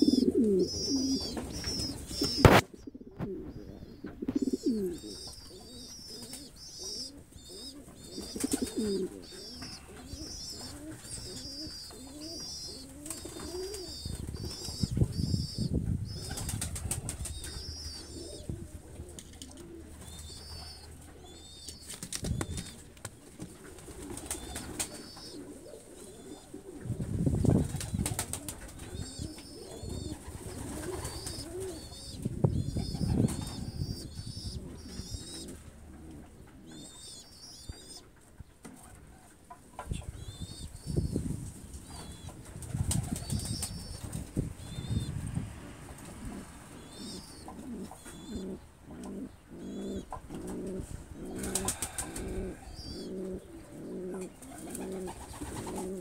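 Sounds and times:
low pigeon coos: 0.0s - 56.0s
wing-flapping: 27.0s - 29.2s, 42.3s - 44.6s.

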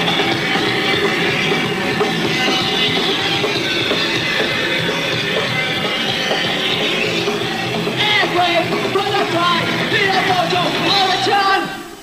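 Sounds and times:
distorted guitar: 0.0s - 12.0s
drums: 0.0s - 12.0s
live punk band playing: 0.0s - 12.0s.

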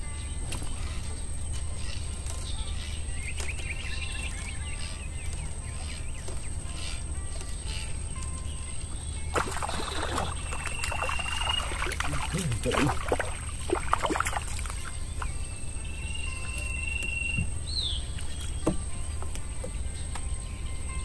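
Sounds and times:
steady low hum: 0.0s - 21.0s
thin whistle-like tone: 7.7s - 12.9s, 15.1s - 19.0s
fish splashing in water: 9.3s - 15.3s.

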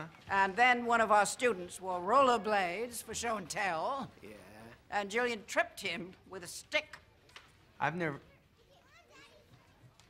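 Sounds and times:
children's voices chattering: 8.2s - 10.0s.

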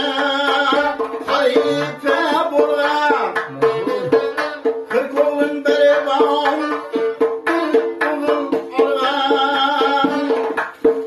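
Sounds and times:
man singing: 0.0s - 10.6s
plucked long-necked lute: 3.5s - 5.0s.

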